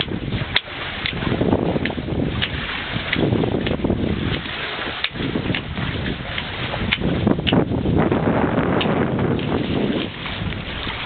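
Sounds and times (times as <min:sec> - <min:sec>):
water washing along hulls: 0:00.0 - 0:11.0
wind buffeting microphone: 0:00.0 - 0:11.0.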